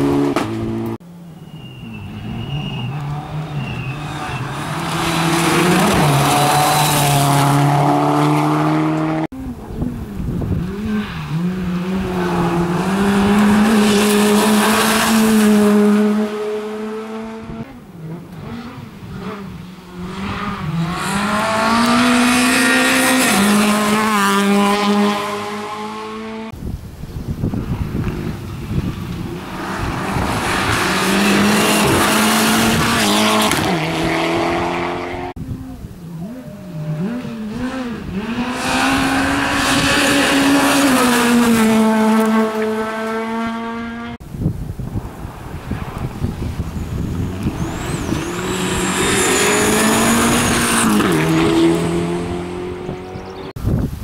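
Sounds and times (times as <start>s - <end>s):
rally car engines revving: 0.0s - 26.6s, 27.9s - 44.2s, 45.5s - 53.6s
gravel and tyre noise: 0.0s - 54.0s.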